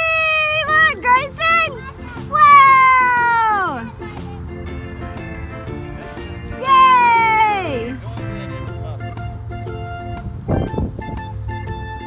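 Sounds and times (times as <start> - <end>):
high voice calling: 0.0 - 8.4
background music with low notes: 0.0 - 12.0.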